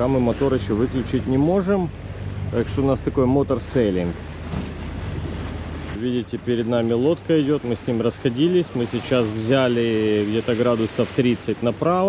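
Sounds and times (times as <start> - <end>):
boat engine humming: 0.0 - 12.0
wind: 0.0 - 12.0.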